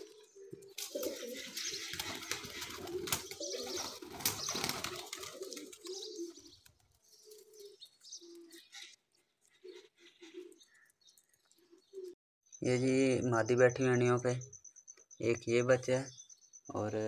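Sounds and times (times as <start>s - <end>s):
pigeons cooing: 0.0s - 12.2s
wings flapping: 0.8s - 7.7s.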